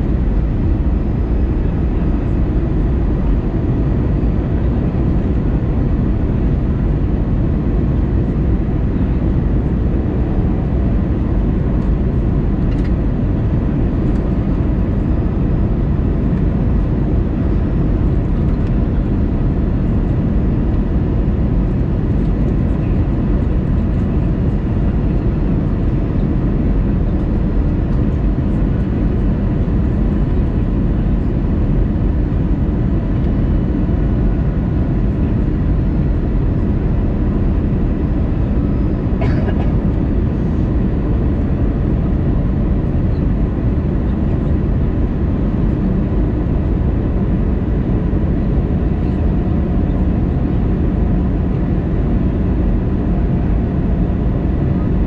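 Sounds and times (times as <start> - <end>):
airplane cabin engine rumble: 0.0 - 55.0.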